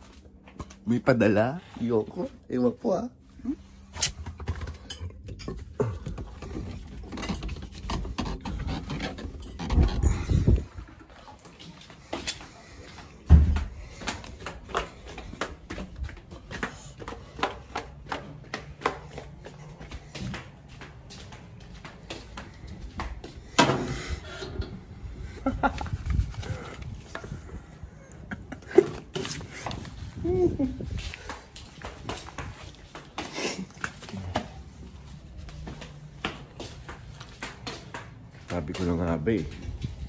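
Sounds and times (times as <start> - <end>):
footsteps: 0.0 - 40.0.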